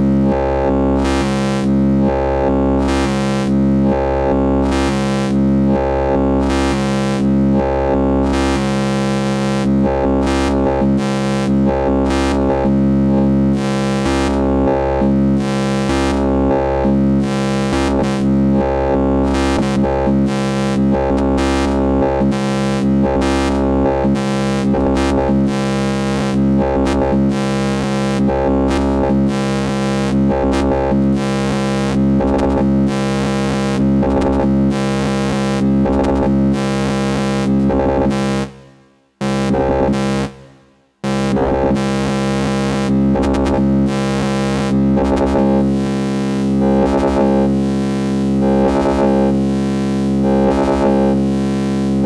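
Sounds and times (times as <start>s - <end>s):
stuttering synthesizer drone: 0.0s - 52.0s.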